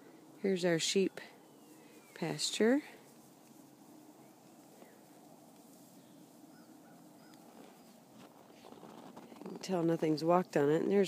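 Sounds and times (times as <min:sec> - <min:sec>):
faint bird chirps: 0:01.0 - 0:02.3, 0:06.0 - 0:08.0.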